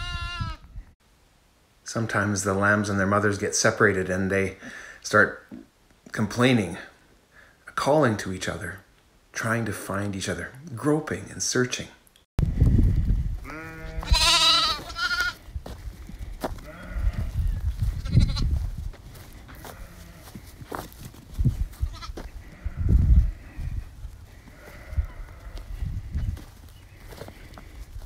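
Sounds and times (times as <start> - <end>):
sheep bleating: 0.0 - 0.6, 13.4 - 15.4, 16.6 - 17.4, 19.5 - 20.4, 21.8 - 23.0, 24.4 - 25.7
wind thumps on microphone: 12.4 - 19.9, 20.6 - 26.6.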